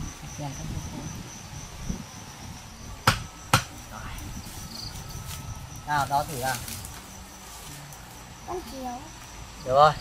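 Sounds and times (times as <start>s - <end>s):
high insect trill: 0.0s - 10.0s.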